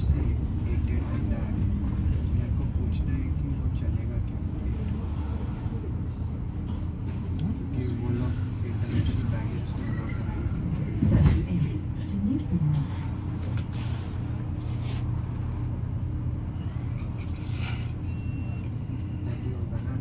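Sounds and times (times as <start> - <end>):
road noise: 0.0 - 19.9
bus hum: 0.0 - 20.0
faint passenger voices: 0.0 - 20.0.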